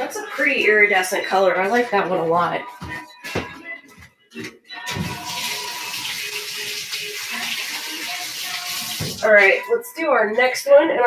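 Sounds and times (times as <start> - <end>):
faint background music: 0.0 - 11.0
running water hissing: 5.1 - 9.3.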